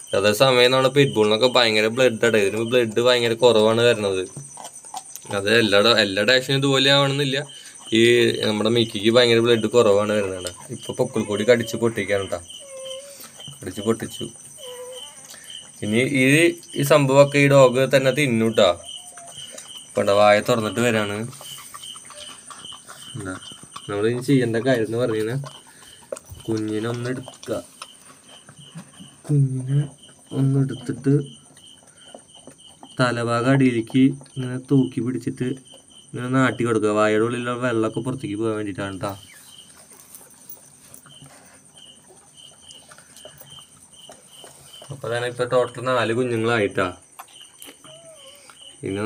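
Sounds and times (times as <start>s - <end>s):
man speaking: 0.2s - 4.3s, 5.3s - 12.5s, 15.8s - 18.9s, 48.8s - 49.0s.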